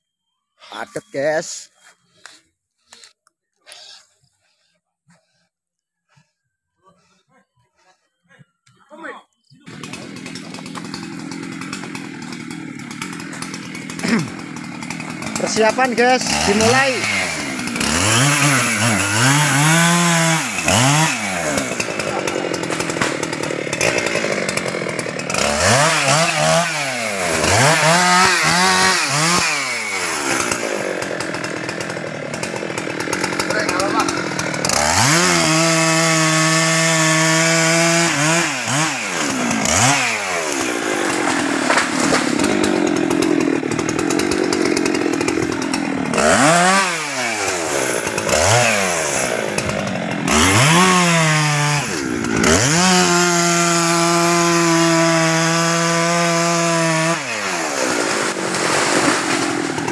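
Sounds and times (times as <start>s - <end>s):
chainsaw revving and cutting: 9.6s - 59.9s.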